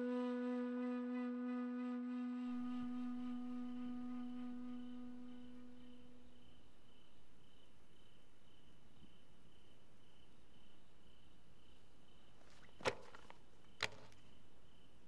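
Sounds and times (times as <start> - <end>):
long held wind instrument note: 0.0 - 6.4
crickets chirping: 0.0 - 15.0.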